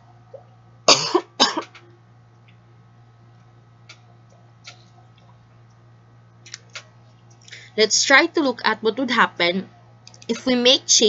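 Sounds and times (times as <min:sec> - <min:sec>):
person coughing: 0:00.9 - 0:01.7.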